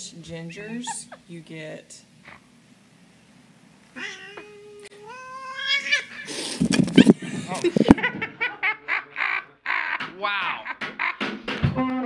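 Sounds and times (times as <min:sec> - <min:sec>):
men laughing: 0:00.6 - 0:01.3, 0:05.3 - 0:11.5.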